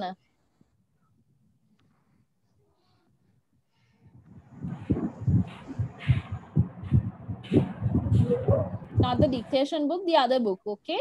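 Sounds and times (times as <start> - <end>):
dull low thumps: 4.1 - 9.6.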